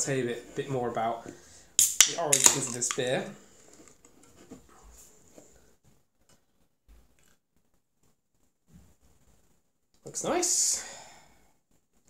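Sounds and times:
beer can and glass clicks: 0:01.8 - 0:03.1.

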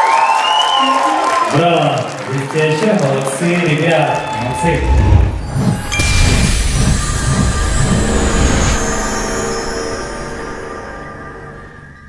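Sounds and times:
rush of noise with pulsing rumble: 0:04.5 - 0:09.3.

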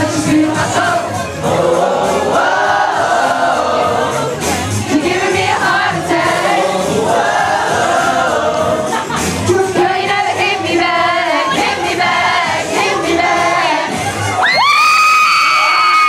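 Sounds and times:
crowd singing along: 0:00.0 - 0:14.5
pop song sung live: 0:00.0 - 0:16.0.

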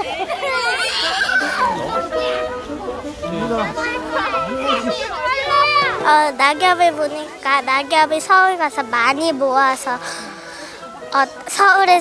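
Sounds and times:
children shouting and laughing: 0:00.0 - 0:12.0.

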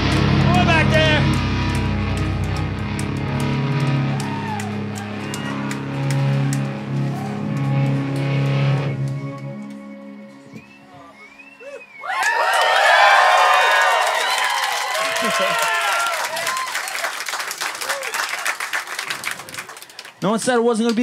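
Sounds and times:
distorted electric guitars: 0:00.0 - 0:11.5
bass guitar: 0:00.0 - 0:11.8.

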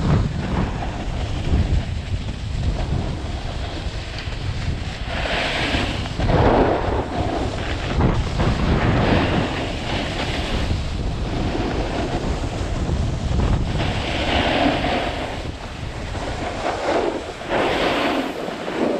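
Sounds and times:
skis scraping over snow: 0:00.0 - 0:18.9
wind buffeting microphone: 0:00.0 - 0:18.9.

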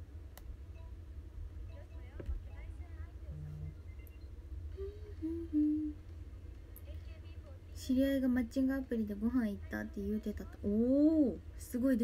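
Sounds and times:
woman humming: 0:04.7 - 0:06.0.

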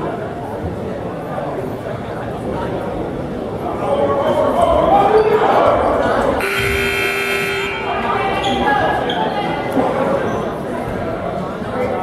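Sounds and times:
crowd chatter echoing: 0:00.0 - 0:12.0
scoreboard buzzer: 0:06.4 - 0:08.0.

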